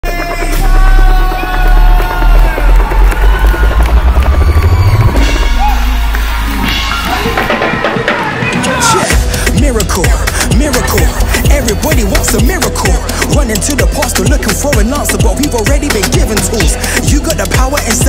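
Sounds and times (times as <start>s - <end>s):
hip hop bass beat: 0.0s - 18.0s.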